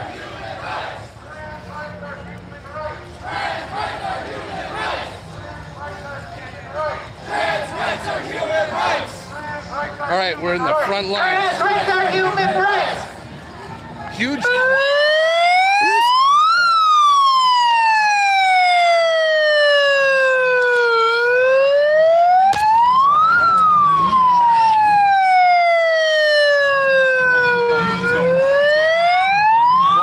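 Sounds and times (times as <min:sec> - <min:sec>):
megaphone siren wailing: 0:14.4 - 0:30.0.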